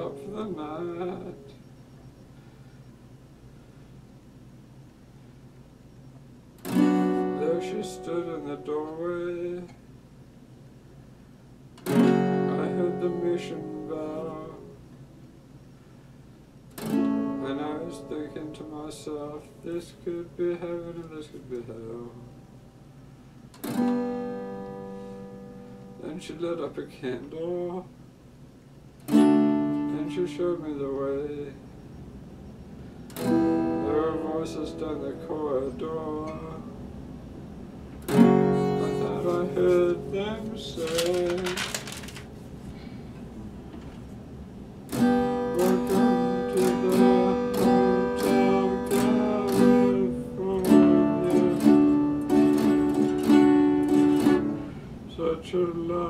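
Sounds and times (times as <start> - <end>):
acoustic guitar chords strummed: 0.0 - 1.9, 6.5 - 9.8, 11.8 - 15.0, 16.7 - 22.9, 23.5 - 27.8, 29.0 - 31.7, 33.0 - 42.9, 44.8 - 56.0
low steady room noise: 0.0 - 56.0.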